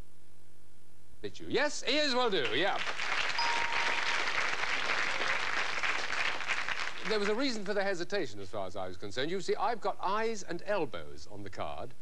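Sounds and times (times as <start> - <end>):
audience applauding: 2.3 - 7.9
short electronic tone: 3.4 - 4.4.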